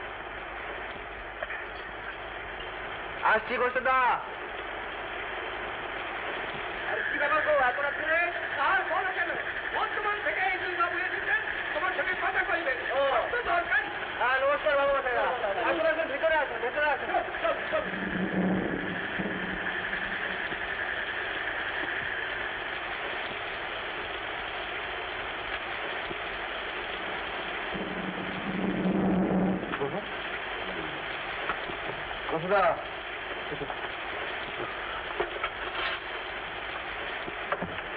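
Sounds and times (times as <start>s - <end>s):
heavy rain hissing: 0.0s - 37.9s.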